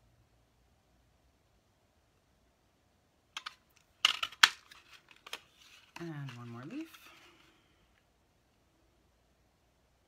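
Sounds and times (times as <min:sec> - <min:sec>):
paper crinkling: 0:03.4 - 0:07.6.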